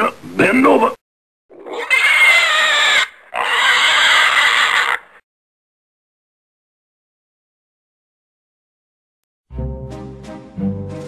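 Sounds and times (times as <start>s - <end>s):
shrill animal squeals: 1.5s - 5.2s.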